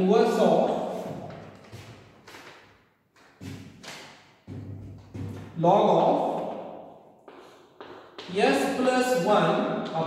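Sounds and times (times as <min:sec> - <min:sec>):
paper sheets handled: 0:00.9 - 0:04.1.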